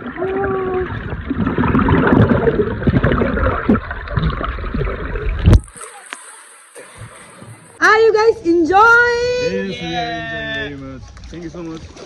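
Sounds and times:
muffled voice underwater: 0:00.0 - 0:01.1
churning water and bubbles: 0:00.0 - 0:07.8.

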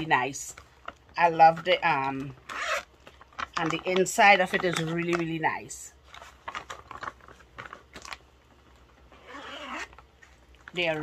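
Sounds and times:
zipper clicks: 0:02.4 - 0:02.9, 0:09.2 - 0:10.0
fabric bag crinkling and rustling: 0:06.0 - 0:11.0.

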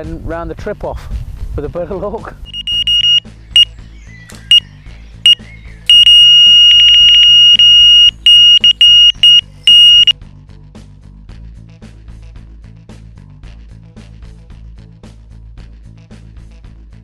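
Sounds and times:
background music: 0:00.0 - 0:17.0
electronic bite alarm bleeps: 0:02.5 - 0:10.1.

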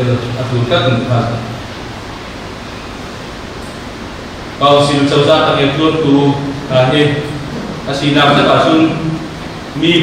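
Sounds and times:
man speaking into a microphone: 0:00.0 - 0:01.6, 0:04.6 - 0:10.0
room noise hiss: 0:00.0 - 0:10.0.

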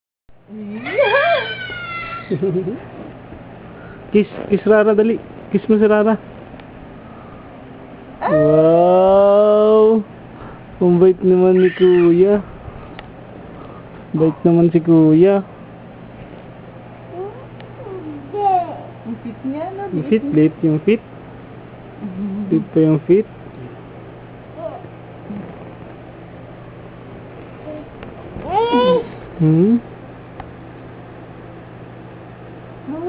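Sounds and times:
steady low hum: 0:00.3 - 0:33.0
baby squealing: 0:00.8 - 0:02.4, 0:11.4 - 0:12.4, 0:28.5 - 0:29.1.

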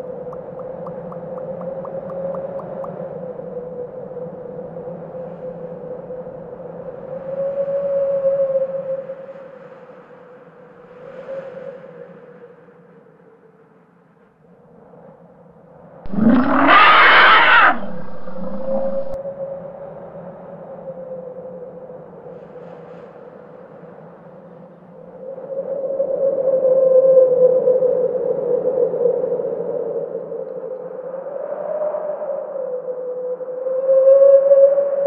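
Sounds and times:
creature-like vocal cry: 0:16.1 - 0:19.2
low drone: 0:16.1 - 0:19.2.

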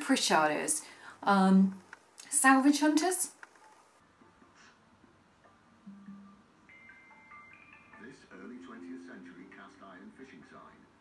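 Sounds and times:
faint television background music: 0:00.0 - 0:11.0.

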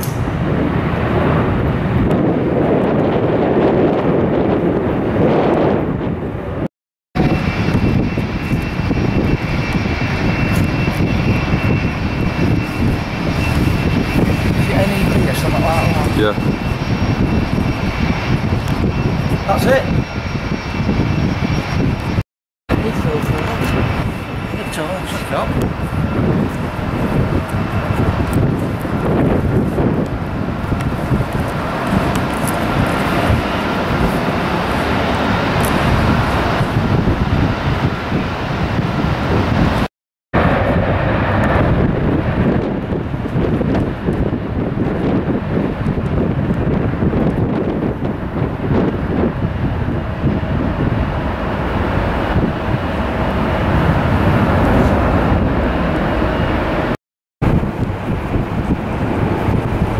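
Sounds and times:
jet engines roaring: 0:00.0 - 0:59.9
wind buffeting microphone: 0:00.0 - 0:59.9.

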